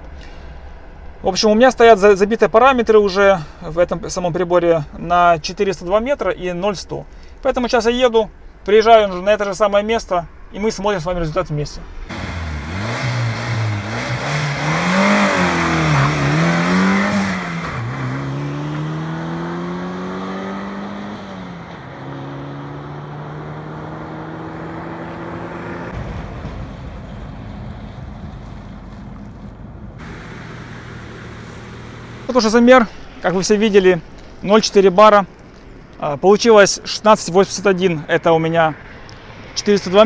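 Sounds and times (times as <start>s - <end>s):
car engine accelerating hard: 12.1s - 33.2s.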